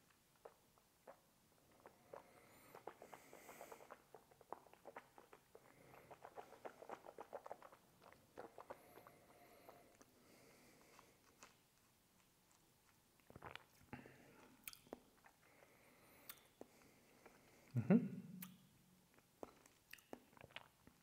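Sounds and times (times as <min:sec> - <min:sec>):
wet mouth clicks and lip smacks: 0:00.1 - 0:09.2, 0:10.8 - 0:15.5, 0:16.2 - 0:17.4, 0:18.4 - 0:21.0.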